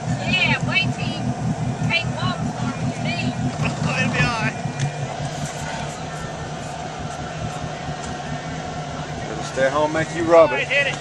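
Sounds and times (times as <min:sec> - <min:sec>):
boat engine humming: 0:00.0 - 0:11.0.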